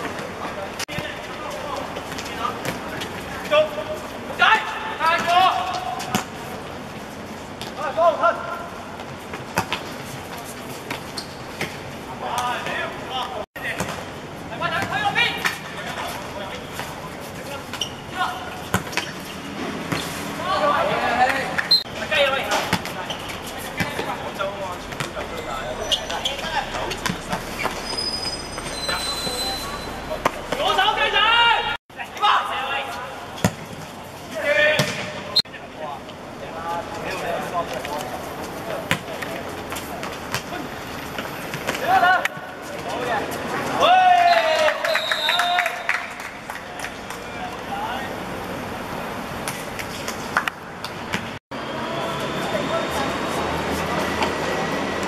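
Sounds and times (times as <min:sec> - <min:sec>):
players shouting: 0:20.4 - 0:33.0.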